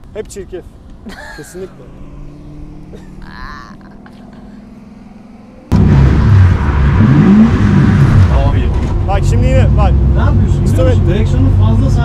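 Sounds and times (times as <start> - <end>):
voices talking: 0.2 - 5.4
car engine revving hard: 1.6 - 3.3, 4.0 - 12.0.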